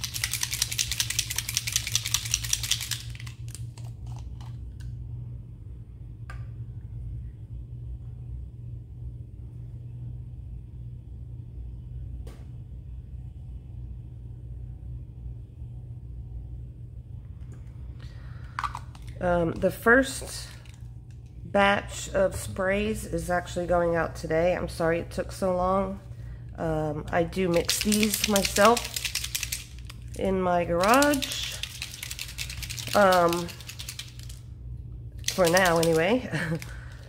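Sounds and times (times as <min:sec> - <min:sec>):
bottle shaken rattling: 0:00.0 - 0:04.6, 0:18.6 - 0:20.9, 0:27.3 - 0:34.5, 0:35.2 - 0:36.7
steady low hum: 0:00.0 - 0:37.0.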